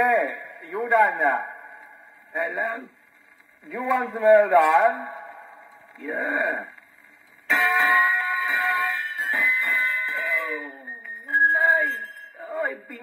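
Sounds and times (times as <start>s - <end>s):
gramophone record playing voices and music: 0.0s - 13.0s.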